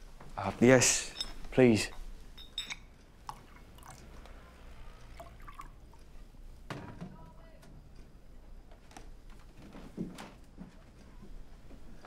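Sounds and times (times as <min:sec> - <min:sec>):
glassware clinking: 0:00.9 - 0:03.4
whiskey being poured: 0:02.7 - 0:06.2.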